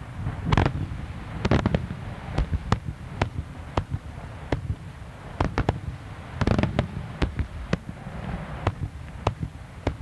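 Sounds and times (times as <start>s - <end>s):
fireworks bangs: 0.0s - 10.0s.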